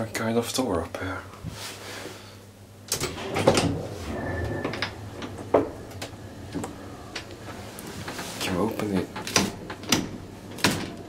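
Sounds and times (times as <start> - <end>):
low steady hum: 0.0 - 11.0
elevator mechanism clicks and knocks: 2.9 - 11.0.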